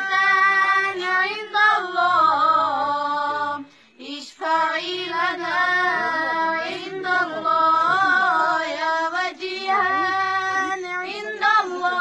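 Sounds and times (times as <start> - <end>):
woman chanting melodically: 0.0 - 12.0.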